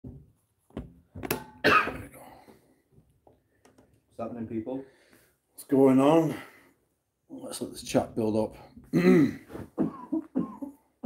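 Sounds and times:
man coughing: 1.6 - 2.4, 8.9 - 10.8.

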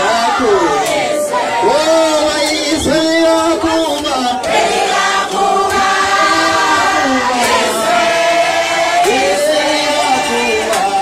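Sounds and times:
crowd singing in long notes: 0.0 - 11.0.

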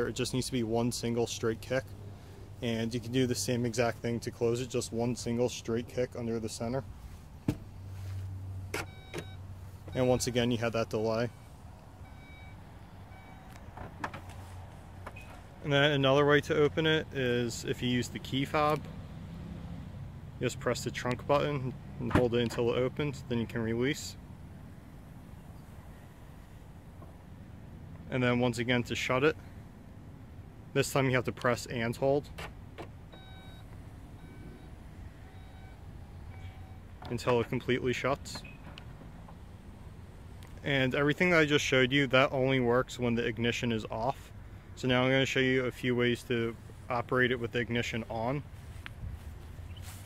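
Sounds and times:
power tailgate closing: 8.7 - 10.0
tailgate clicks shutting: 8.7 - 10.0, 32.3 - 33.8
short warning beeps: 8.8 - 10.5, 11.3 - 13.6, 33.2 - 36.9.

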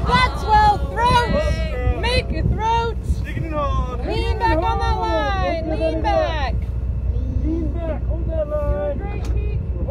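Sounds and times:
wind rumble on microphone: 0.0 - 9.9.

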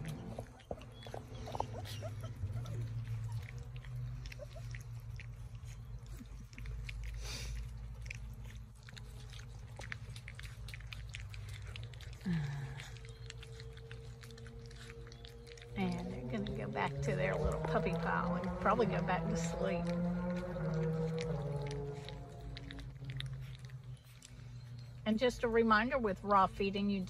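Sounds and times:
puppies chewing wetly: 0.0 - 27.0.

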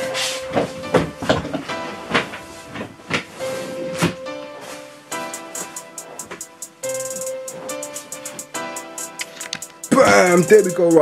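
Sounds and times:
clothes rustling: 0.0 - 6.5
background music with held notes: 0.0 - 11.0.

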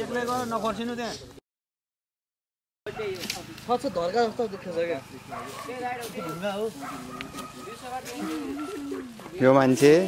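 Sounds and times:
people talking indistinctly: 2.9 - 10.0.

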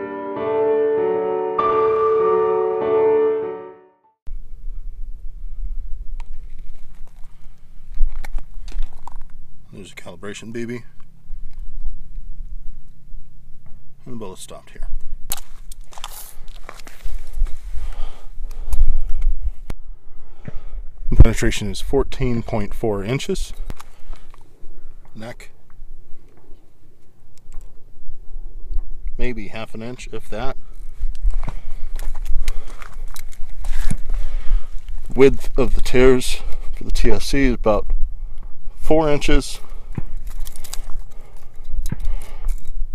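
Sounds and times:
handling and shuffling noise: 6.2 - 9.4, 15.4 - 19.4, 30.7 - 35.9.

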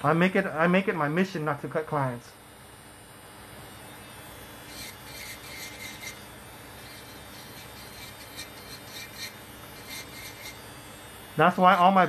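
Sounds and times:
electric nail drill filing: 2.7 - 12.0.

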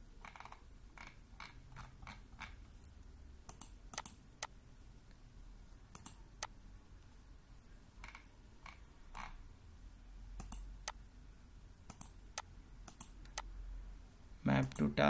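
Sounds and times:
computer mouse button clicking: 5.9 - 6.5, 10.4 - 10.7, 11.9 - 13.5.

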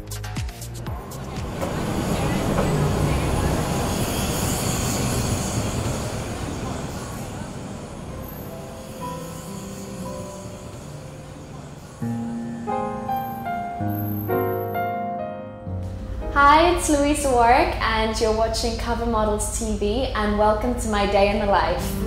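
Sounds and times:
music beat: 0.0 - 3.9
traffic noise: 0.7 - 12.2
hubbub of passers-by: 0.9 - 12.0
soft piano notes: 0.9 - 18.2.

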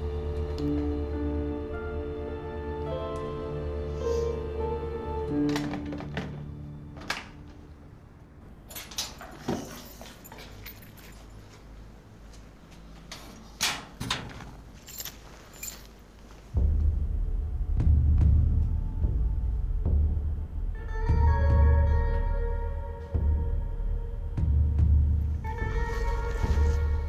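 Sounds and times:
low dark drone: 0.0 - 8.7, 16.6 - 27.0.

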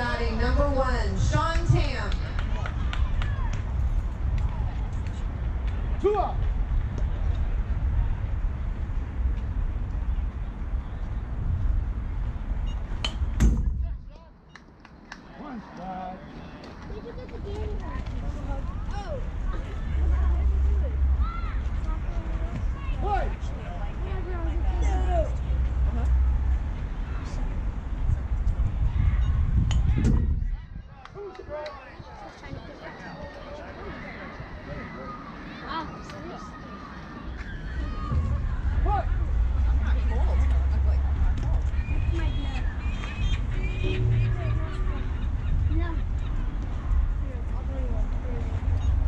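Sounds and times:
low rumble: 0.0 - 14.1, 18.0 - 30.9, 37.7 - 49.0
wind buffeting microphone: 0.0 - 14.2, 16.7 - 34.9, 37.6 - 49.0
faint voices: 15.2 - 49.0.

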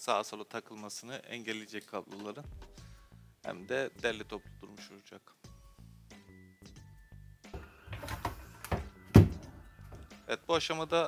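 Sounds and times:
background music: 0.0 - 11.0
loud thunk: 8.7 - 9.5.

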